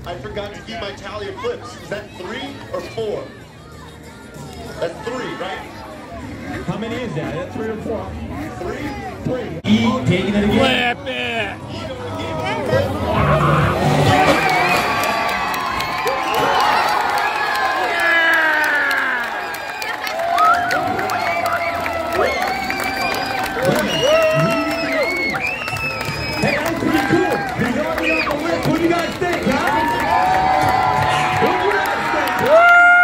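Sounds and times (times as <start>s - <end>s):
crowd cheering and shouting: 10.2s - 33.0s.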